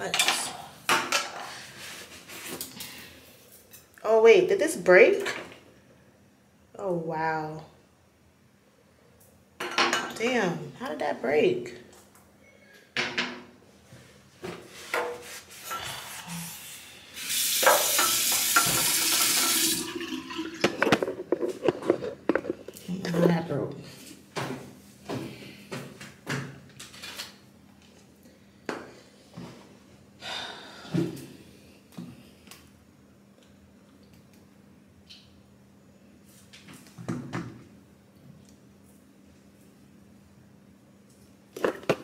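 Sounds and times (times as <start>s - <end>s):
water running from a tap: 17.2s - 20.6s.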